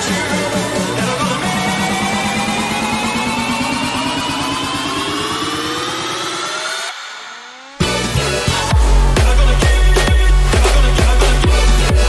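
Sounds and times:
buzzing synth rising in pitch: 0.0s - 10.5s
fast pulsing electronic beat: 0.0s - 12.0s.

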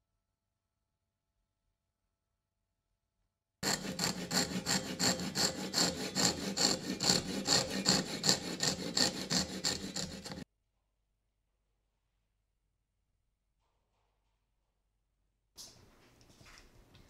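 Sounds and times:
handsaw cutting wood: 3.6s - 10.4s.

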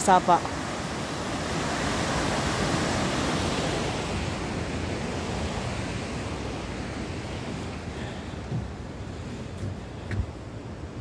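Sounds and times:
water rushing over rocky cascades: 0.0s - 10.5s.

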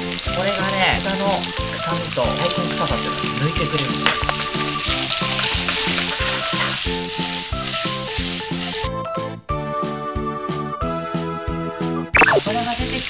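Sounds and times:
meat sizzling in a frying pan: 0.0s - 9.0s, 12.2s - 13.0s.

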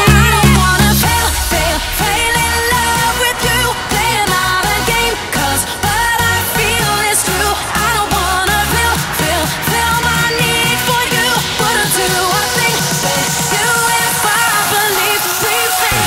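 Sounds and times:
pop song with sung vocals: 0.0s - 16.0s.

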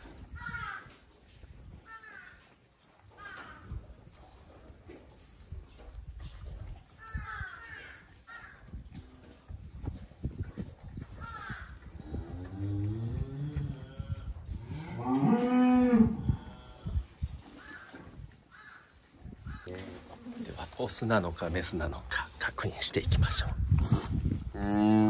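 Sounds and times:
cow mooing: 12.5s - 16.9s
straw rustling: 19.5s - 24.2s.

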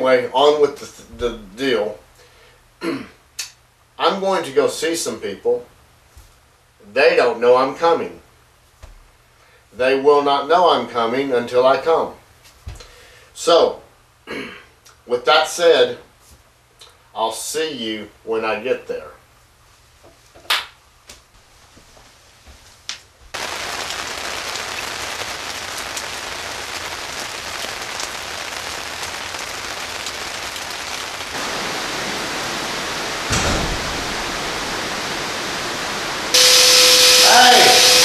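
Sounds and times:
steady outdoor hiss: 0.0s - 38.0s
burst of noise: 23.4s - 38.0s
steady tone: 31.4s - 38.0s
short thump: 33.3s - 34.2s.

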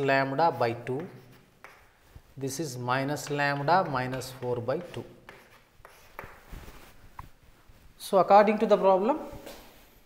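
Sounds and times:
chalk scraping on chalkboard: 4.1s - 7.0s.

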